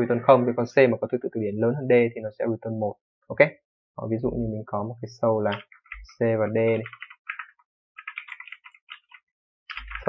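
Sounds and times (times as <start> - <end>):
computer keyboard typing: 5.5 - 10.0.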